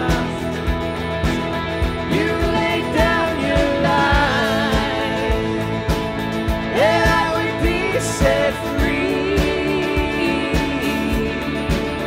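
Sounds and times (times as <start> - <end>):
person singing: 0.0 - 0.8, 1.9 - 12.0
acoustic guitar: 0.0 - 12.0
bass guitar: 0.0 - 12.0.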